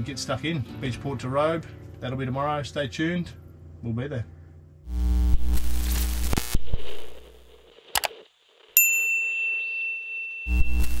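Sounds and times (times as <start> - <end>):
crackling static: 4.8 - 8.8, 10.5 - 11.0
sharp electronic clicks: 7.9 - 8.2
bright ringing ding: 8.8 - 11.0.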